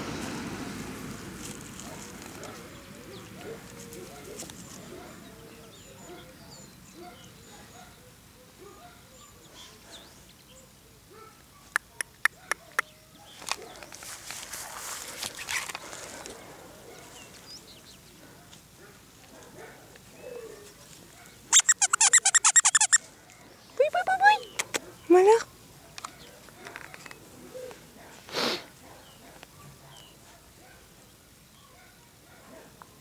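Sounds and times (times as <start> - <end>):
rapid chattering rattle: 21.5 - 23.0.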